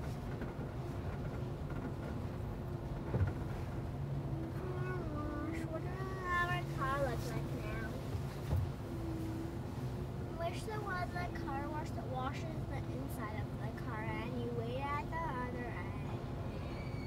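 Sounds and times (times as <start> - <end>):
car wash machinery drone: 0.0 - 17.0.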